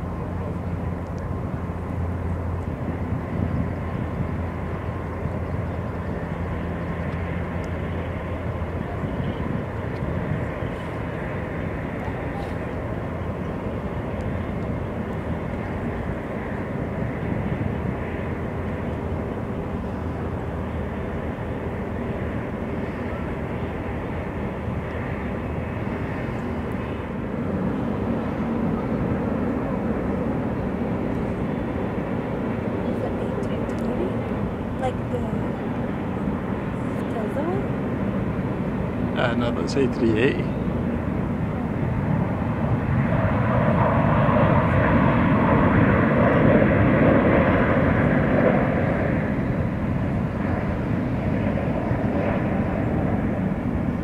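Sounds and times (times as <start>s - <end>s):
jet engines running: 0.0s - 54.0s
low hum: 0.0s - 54.0s.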